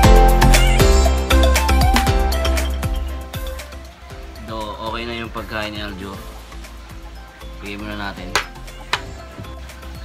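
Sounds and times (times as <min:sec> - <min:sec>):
man's voice: 0:07.6 - 0:08.6.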